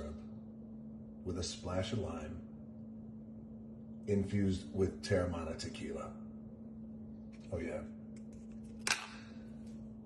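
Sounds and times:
low steady hum: 0.0 - 10.0
plastic lid snapping off: 8.8 - 9.2.

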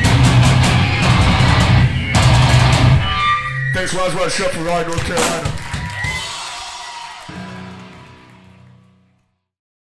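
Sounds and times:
amplified guitar notes ringing: 0.0 - 3.8.

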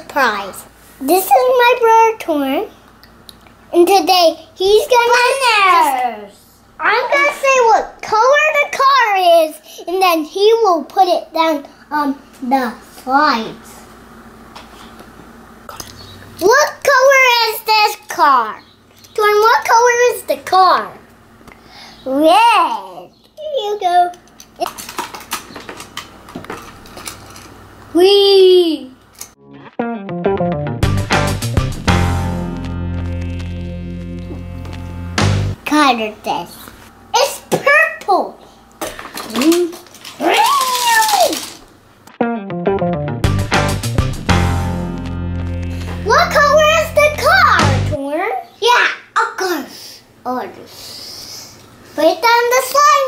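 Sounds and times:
child squealing: 40.2 - 41.5.

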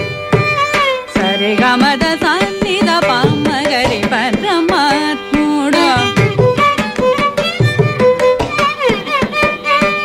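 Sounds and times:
mridangam strokes: 0.0 - 10.0
violin: 0.0 - 10.0
woman singing: 1.1 - 6.6.

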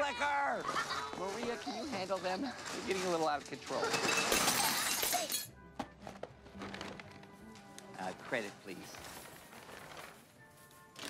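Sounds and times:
background music: 0.0 - 11.0
packages clattering onto floor: 0.7 - 10.4.

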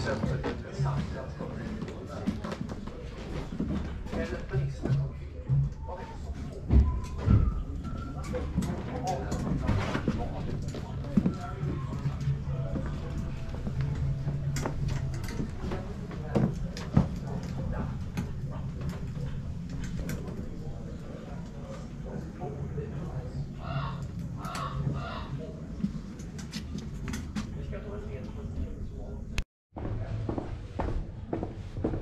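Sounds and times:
ambient music: 0.0 - 27.3
indistinct voices: 0.0 - 29.4.

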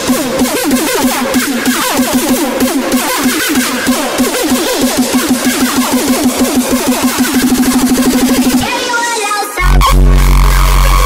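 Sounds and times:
distorted kick drum roll: 0.0 - 8.7, 9.6 - 11.0.

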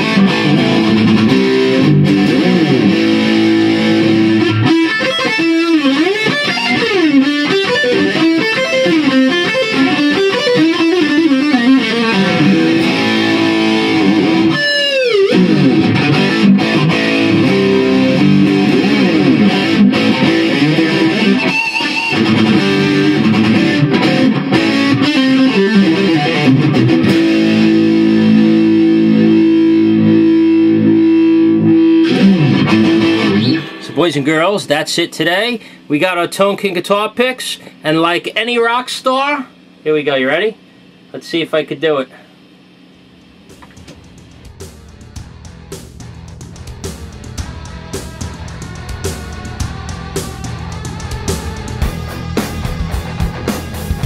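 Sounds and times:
distorted electric guitar: 0.0 - 34.8, 43.4 - 54.0.

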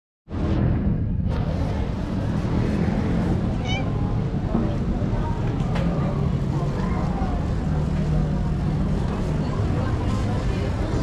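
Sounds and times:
low street rumble: 0.3 - 11.0
cat meowing: 3.6 - 4.1.

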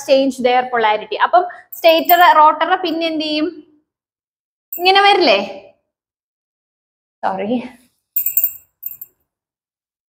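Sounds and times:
small hard objects clinking: 8.2 - 9.1.

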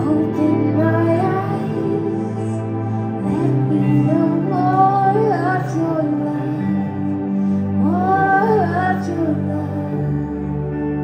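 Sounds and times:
woman singing: 0.0 - 10.8.

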